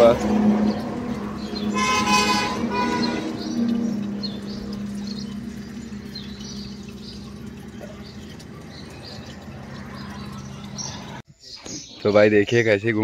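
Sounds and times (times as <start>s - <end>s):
water running through strainer: 0.0s - 11.2s
vehicle horn honking: 1.5s - 4.1s.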